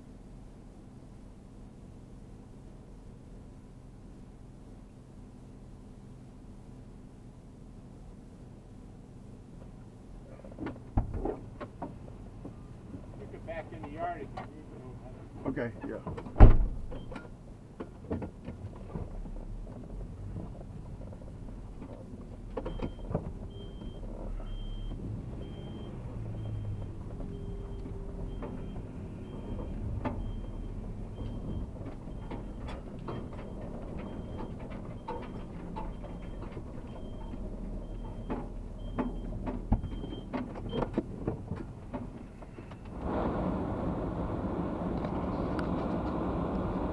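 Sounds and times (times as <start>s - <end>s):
road noise: 10.0s - 46.9s
turn signal ticking: 21.1s - 41.1s.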